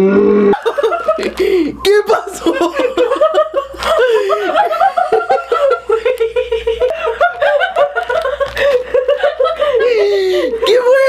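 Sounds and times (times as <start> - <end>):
person laughing hard: 0.3 - 11.0.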